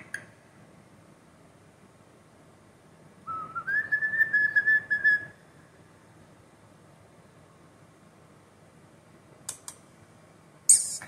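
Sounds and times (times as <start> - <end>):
starling whistling: 3.3 - 5.4.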